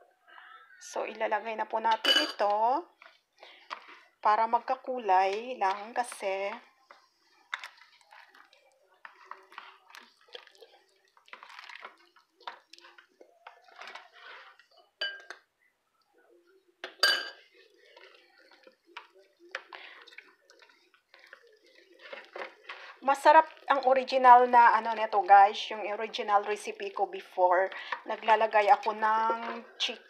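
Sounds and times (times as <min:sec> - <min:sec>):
wet handling of raw chicken: 0:06.7 - 0:14.9
spoon clinking in ceramic bowl: 0:15.0 - 0:15.4, 0:16.8 - 0:17.4.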